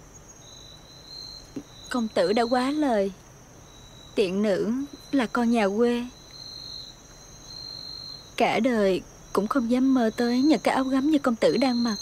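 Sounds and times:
crickets chirring: 0.0 - 12.0
lower cricket trill: 0.0 - 12.0.

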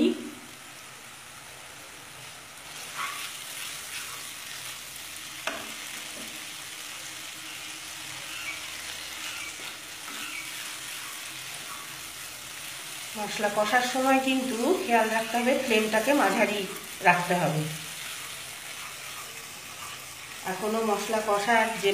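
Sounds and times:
masala sizzling in hot oil: 0.0 - 21.9
spatula scraping pan: 2.7 - 4.8, 7.2 - 21.9.

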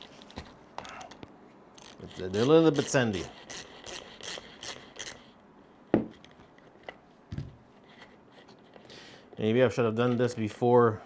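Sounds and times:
hand tool scraping sand: 2.0 - 4.7.

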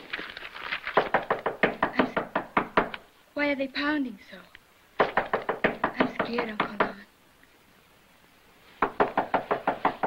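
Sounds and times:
heavy pounding on a door: 1.0 - 3.0, 5.0 - 7.0, 8.8 - 10.0.

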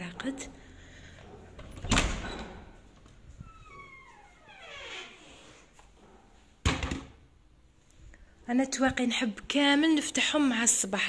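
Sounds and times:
door squeaking: 1.6 - 2.8, 3.4 - 5.5.

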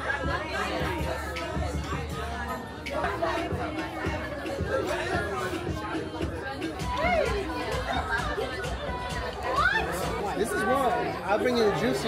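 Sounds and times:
background music: 0.0 - 12.0
people chatting: 0.0 - 12.0.

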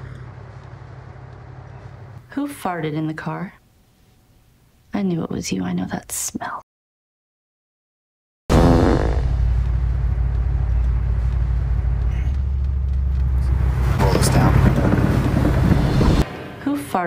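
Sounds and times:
car engine and road noise: 0.0 - 2.2, 9.2 - 16.6.

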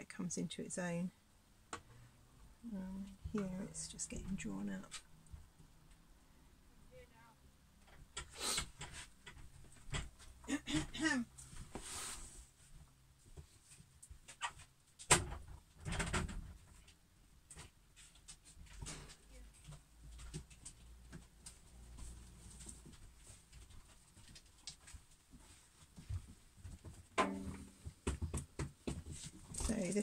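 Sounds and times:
dog clicks and rustles: 17.6 - 27.1.

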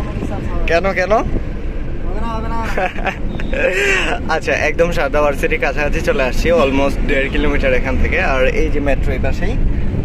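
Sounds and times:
car cabin road rumble: 0.0 - 10.0
people talking: 2.1 - 9.6.

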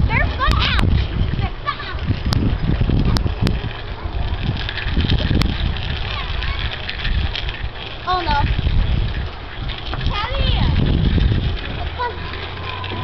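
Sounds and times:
wind rumble on microphone: 0.0 - 13.0
children squealing and shouting: 0.1 - 0.9, 6.0 - 6.9, 11.8 - 13.0.

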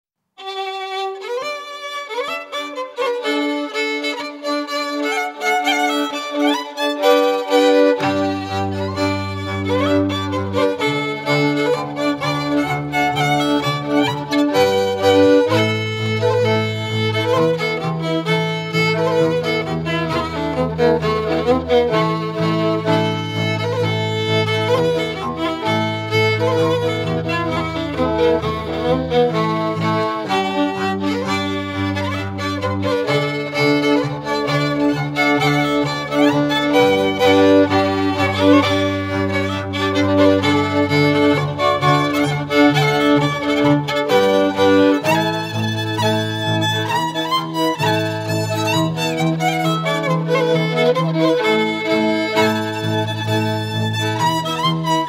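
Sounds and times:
bowed string bass: 0.4 - 55.0
fiddle playing dance tune: 0.4 - 55.0.

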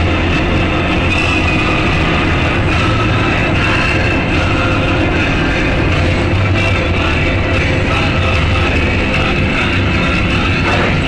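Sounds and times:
loud rock music: 0.0 - 11.0.

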